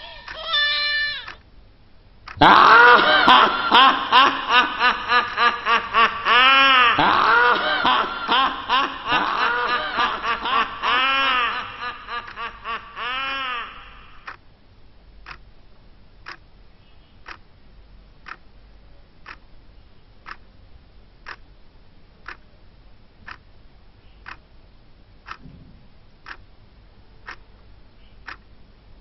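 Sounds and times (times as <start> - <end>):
person laughing: 2.4 - 14.3.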